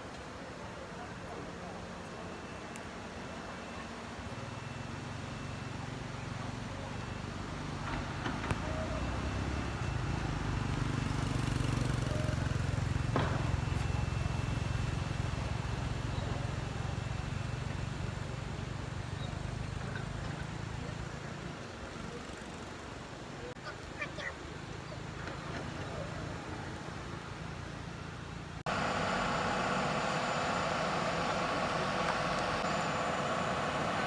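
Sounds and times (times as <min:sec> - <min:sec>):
vehicle engine humming: 0:00.0 - 0:34.0.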